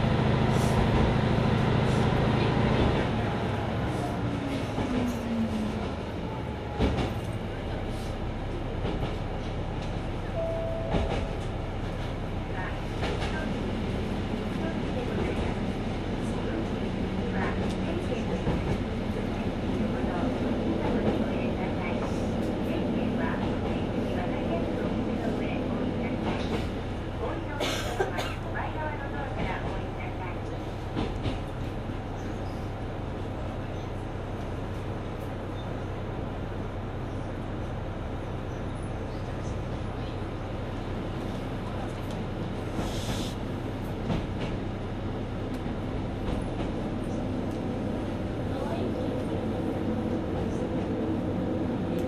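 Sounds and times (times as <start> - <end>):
diesel railcar running: 0.0 - 52.0.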